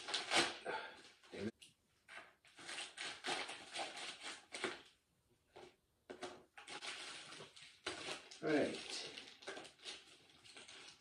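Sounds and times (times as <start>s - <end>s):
plastic bag crinkling: 6.6s - 11.0s.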